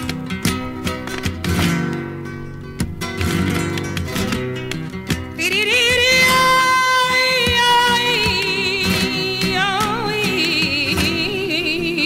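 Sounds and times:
flamenco guitar strumming: 0.0s - 12.0s.

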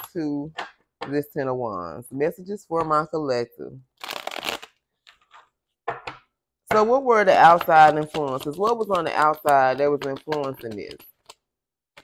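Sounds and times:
cards riffle-shuffled: 4.0s - 5.5s.

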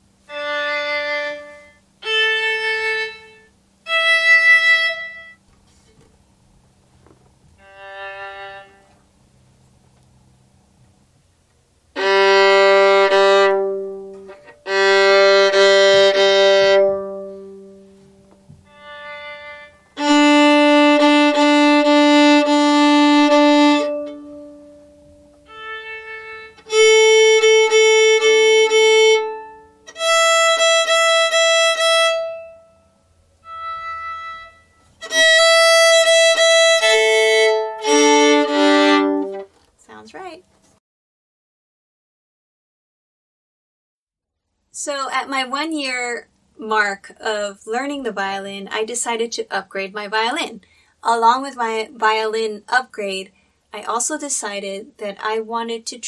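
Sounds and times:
violin bowed long notes: 0.2s - 5.4s, 7.6s - 9.0s, 11.9s - 39.5s.

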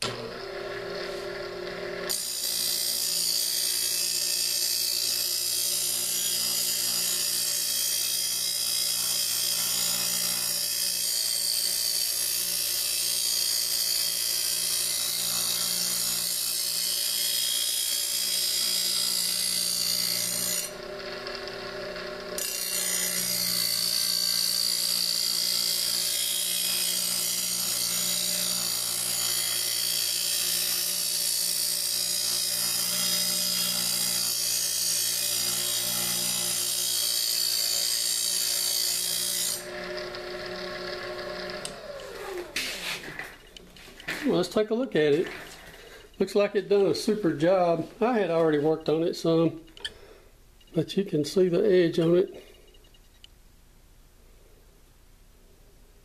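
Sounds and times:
motor humming: 0.0s - 3.2s, 39.6s - 43.6s
grinding wheel grinding steel blade: 0.0s - 50.0s.

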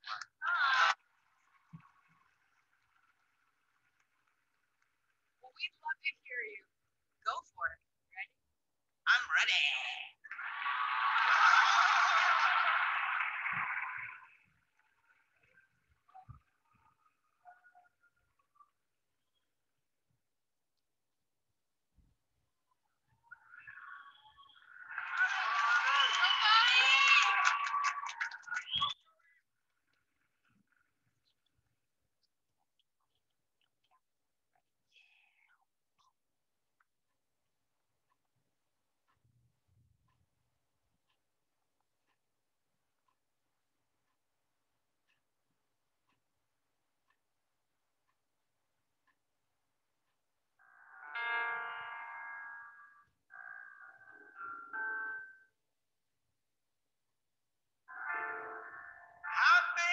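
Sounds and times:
audience clapping and cheering: 0.0s - 5.4s, 10.2s - 15.8s, 24.5s - 29.0s
piano chords: 51.0s - 52.8s.

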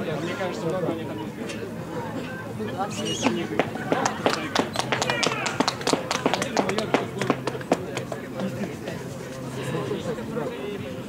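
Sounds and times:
players calling out: 2.8s - 7.5s.

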